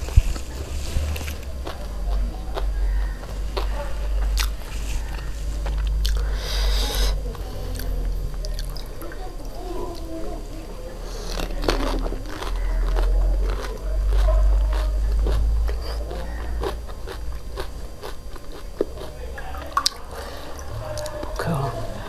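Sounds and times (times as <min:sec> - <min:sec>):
crunching and chewing: 0:00.0 - 0:21.6.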